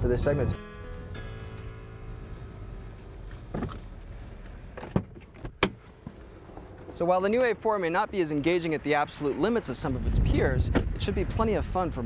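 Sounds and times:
car door clicks and clunks: 0:03.4 - 0:06.9.

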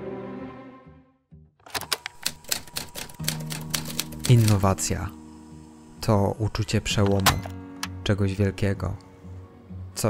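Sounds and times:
background music: 0:00.0 - 0:01.6, 0:02.4 - 0:10.0
typewriter keys clicking: 0:01.7 - 0:04.8.

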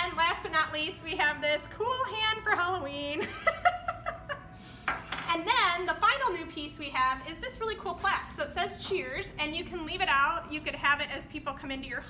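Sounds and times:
woman speaking: 0:00.0 - 0:03.2, 0:05.3 - 0:12.0.

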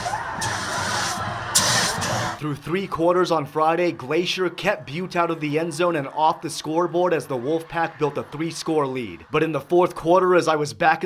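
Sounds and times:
smoke jets hissing: 0:00.0 - 0:02.4
stadium crowd noise: 0:00.0 - 0:11.0.

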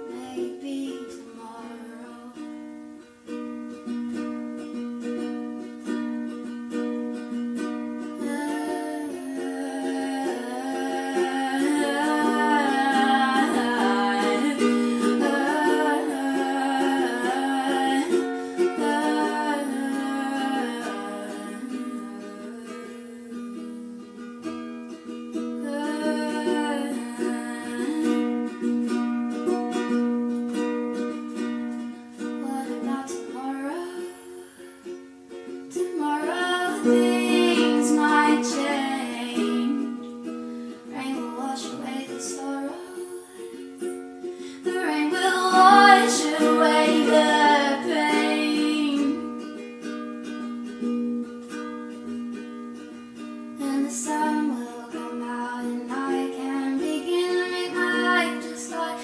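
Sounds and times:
person singing: 0:00.0 - 0:02.7, 0:08.2 - 0:24.3, 0:25.4 - 0:29.9, 0:32.2 - 0:35.0, 0:35.6 - 0:51.1, 0:53.5 - 0:59.0
ukulele strumming: 0:00.0 - 0:59.0.

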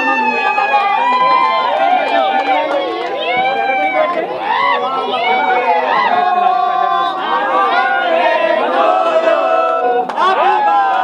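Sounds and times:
crowd talking and laughing: 0:00.0 - 0:11.0.

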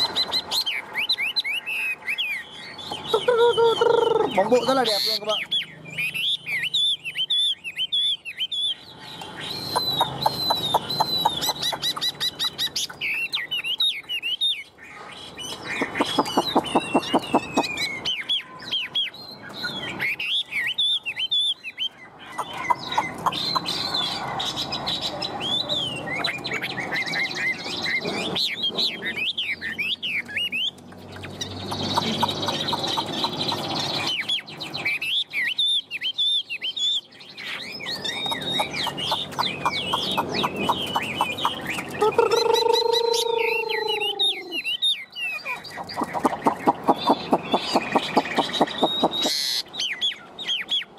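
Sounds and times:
songbird singing warbled phrases: 0:00.0 - 0:50.9.

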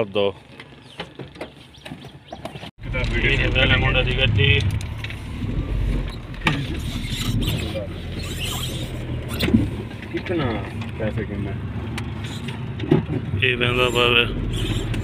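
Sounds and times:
car engine and road noise: 0:00.0 - 0:15.0
voices talking: 0:02.8 - 0:04.9, 0:13.3 - 0:15.0.

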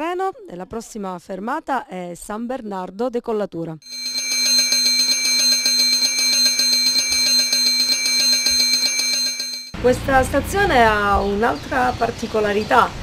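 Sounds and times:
railway signal bell ringing: 0:03.8 - 0:09.8.

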